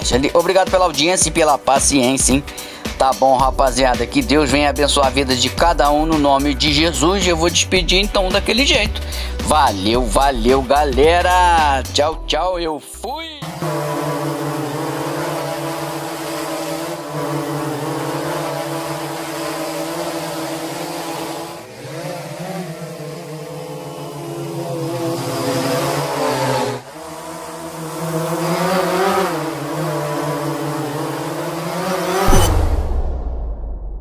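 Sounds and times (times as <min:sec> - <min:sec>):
drone propellers buzzing: 0:13.4 - 0:33.1.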